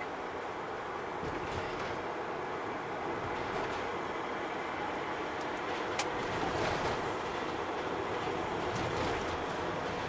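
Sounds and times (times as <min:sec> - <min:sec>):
tyres on the road: 0:00.0 - 0:10.0.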